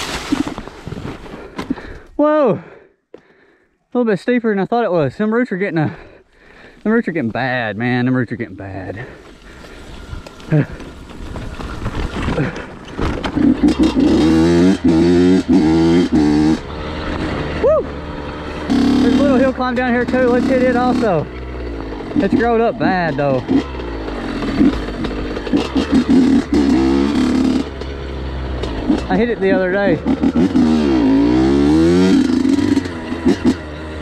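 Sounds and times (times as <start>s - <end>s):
bike tyres skidding over leaves: 0.0s - 1.5s, 6.9s - 13.8s
dirt bike engine revving: 7.8s - 34.0s.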